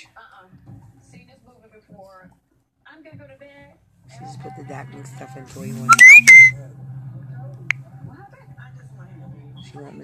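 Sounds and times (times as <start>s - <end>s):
faint background talk: 0.0s - 10.0s.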